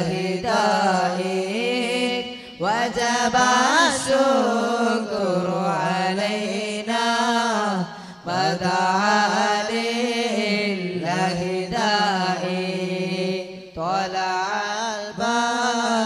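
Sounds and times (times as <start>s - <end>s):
person chanting devotional melody: 0.0s - 16.0s.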